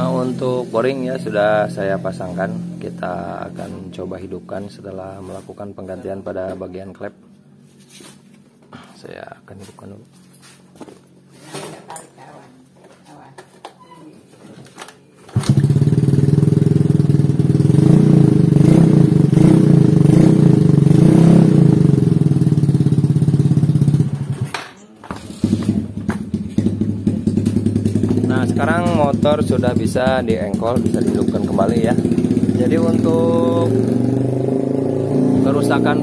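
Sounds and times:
scooter engine running: 15.3s - 36.0s.

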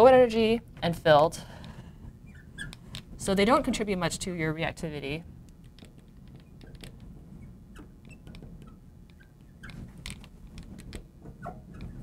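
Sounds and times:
marker squeaking on glass: 2.2s - 2.8s, 7.4s - 9.9s, 11.2s - 12.0s.

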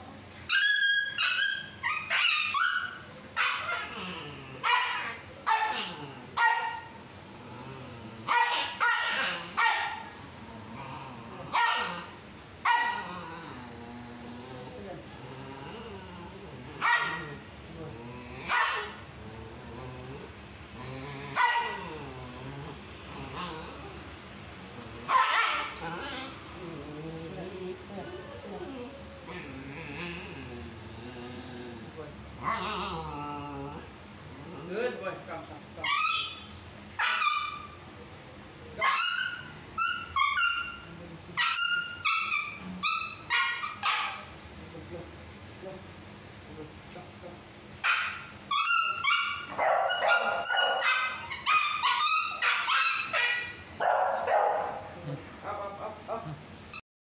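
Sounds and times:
dog barking high-pitched: 8.3s - 10.0s, 11.6s - 12.0s, 25.1s - 25.7s, 47.8s - 54.8s.

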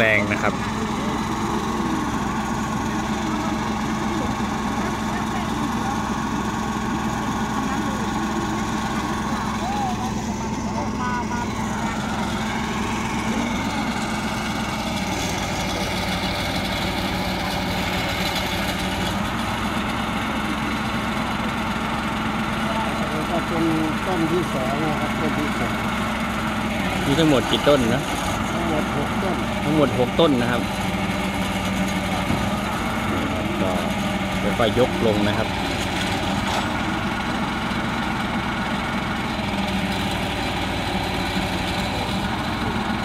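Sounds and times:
truck engine idling: 0.0s - 43.0s.

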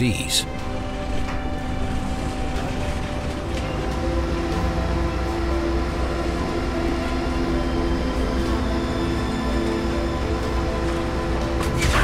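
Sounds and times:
hum of steady tones: 0.0s - 11.9s.

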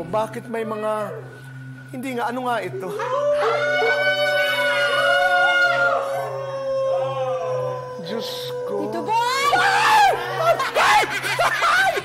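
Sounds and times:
eerie background music: 0.0s - 12.0s.

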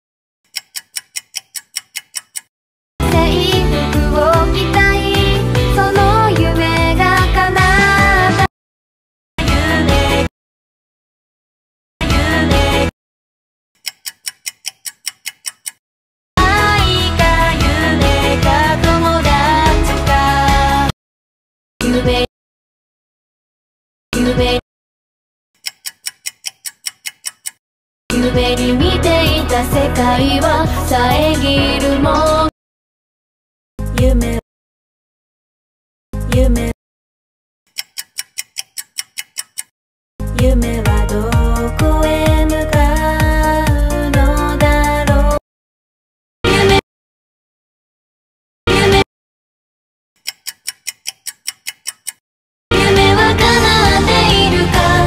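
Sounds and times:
rapid clock-like ticks: 0.5s - 2.5s, 13.8s - 15.8s, 25.6s - 27.6s, 37.7s - 39.7s, 50.2s - 52.2s
countdown timer ticking: 37.8s - 45.4s.

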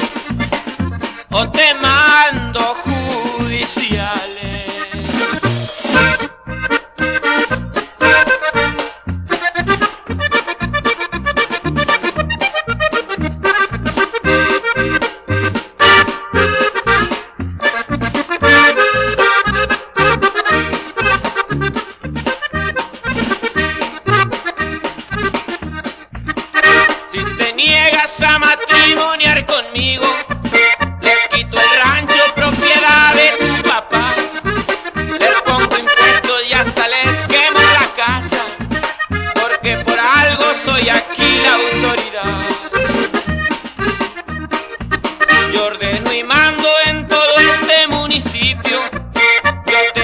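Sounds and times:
accordion melody: 0.0s - 50.0s
steady pulsing bass beat: 0.0s - 50.0s.

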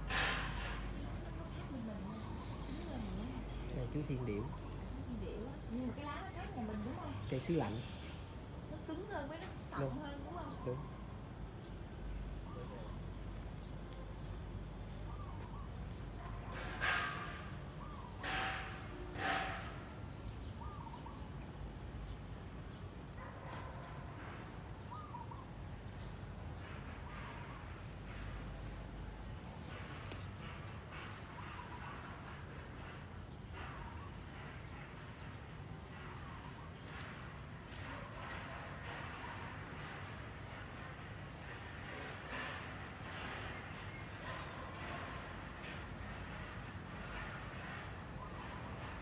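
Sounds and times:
small birds chirping: 0.9s - 16.8s.

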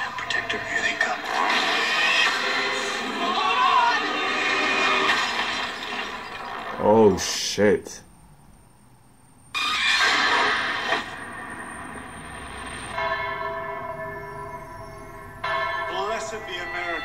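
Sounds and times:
church bells ringing: 11.9s - 17.0s.

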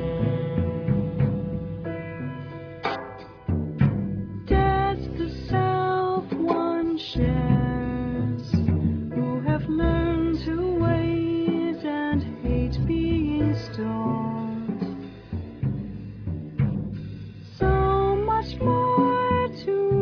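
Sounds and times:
jazz ensemble playing: 0.0s - 20.0s.

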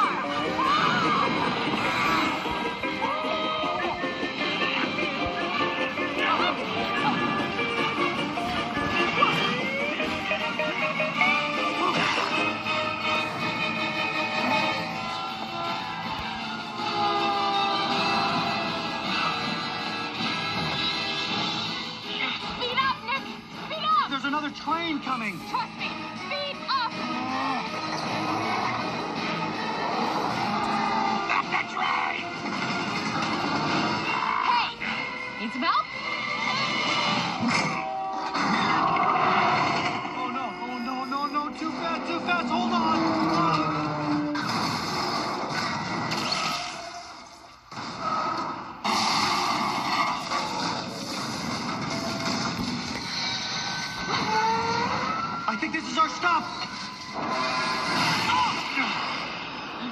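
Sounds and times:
people shouting: 0.0s - 4.2s, 14.0s - 19.7s
action film music: 0.0s - 59.9s.

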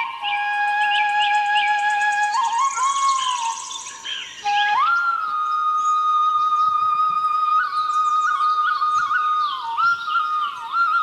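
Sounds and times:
flute melody: 0.0s - 11.0s.

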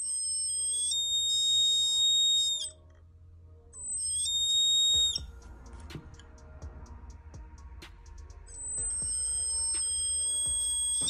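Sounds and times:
piezo buzzer high steady tone: 0.0s - 2.7s, 3.8s - 5.4s, 8.6s - 11.0s.

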